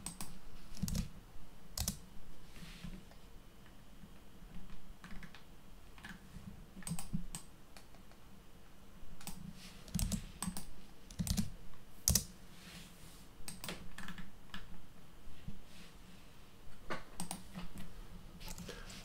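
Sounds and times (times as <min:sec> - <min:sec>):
computer keyboard typing: 0:00.0 - 0:01.1, 0:01.8 - 0:02.0, 0:05.0 - 0:05.4, 0:06.8 - 0:07.5, 0:09.2 - 0:12.3, 0:13.5 - 0:14.7, 0:17.2 - 0:17.6, 0:18.4 - 0:18.7.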